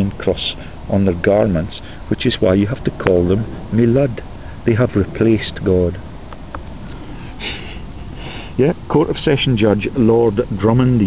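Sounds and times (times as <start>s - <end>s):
low steady background hiss: 0.0s - 11.0s
man sniffing: 7.0s - 8.6s.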